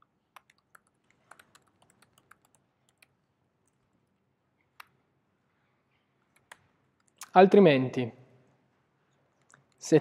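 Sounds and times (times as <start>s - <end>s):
faint computer keyboard typing: 0.0s - 4.0s, 6.2s - 7.3s.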